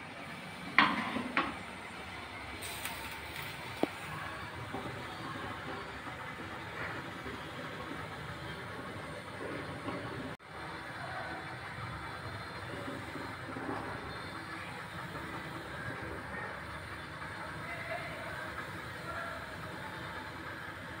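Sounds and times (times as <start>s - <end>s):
steady background noise: 0.0s - 21.0s.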